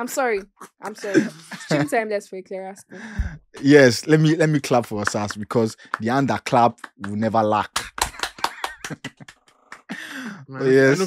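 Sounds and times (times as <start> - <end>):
laughter: 0.6 - 1.9, 7.8 - 11.0
people clapping: 3.6 - 11.0.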